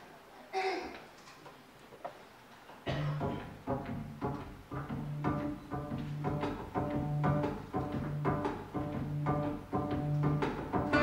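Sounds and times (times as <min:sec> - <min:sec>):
double bass: 0:02.9 - 0:11.0
plucked strings: 0:02.9 - 0:11.0.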